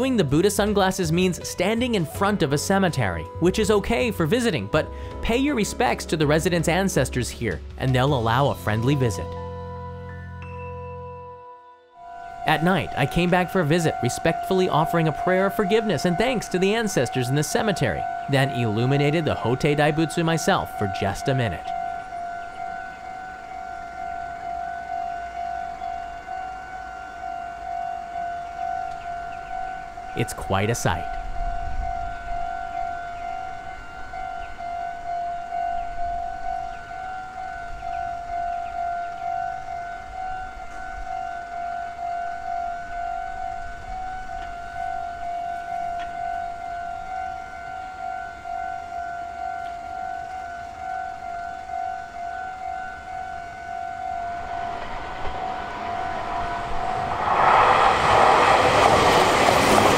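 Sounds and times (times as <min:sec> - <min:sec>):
level-crossing alarm tone: 0:08.6 - 0:59.9.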